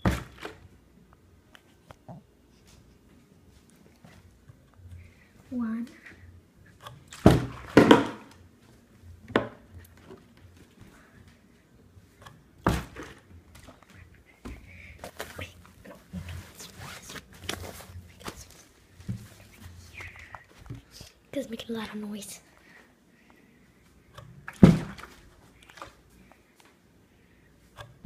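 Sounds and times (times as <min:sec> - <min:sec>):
plastic bottle landing knocks: 0:07.2 - 0:08.3, 0:12.6 - 0:13.2, 0:24.5 - 0:25.2.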